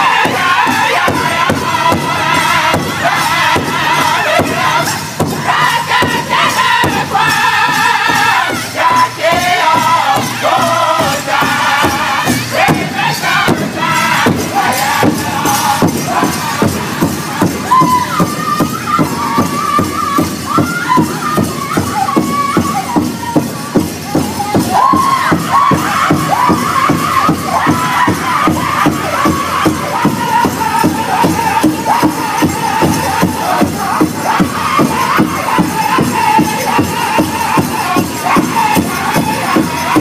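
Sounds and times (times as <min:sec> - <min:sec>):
men singing in unison: 0:00.0 - 0:23.1, 0:23.8 - 0:40.0
large drum beating: 0:00.0 - 0:40.0.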